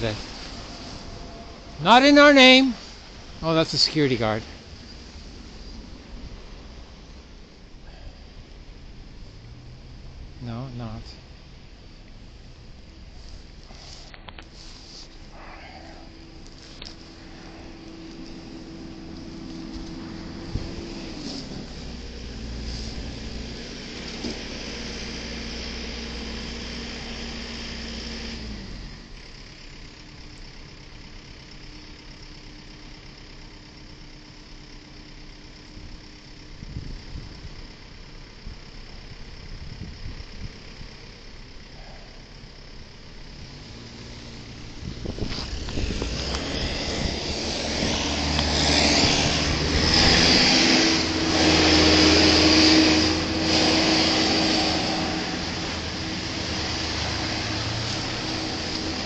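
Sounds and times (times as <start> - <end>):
steady engine hum: 0.0 - 59.0
tyre and road noise: 0.0 - 59.0
vehicle passing close: 12.7 - 29.1, 43.4 - 59.0.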